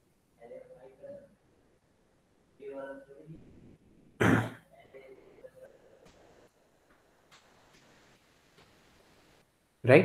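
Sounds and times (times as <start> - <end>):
man coughing: 4.2 - 4.6.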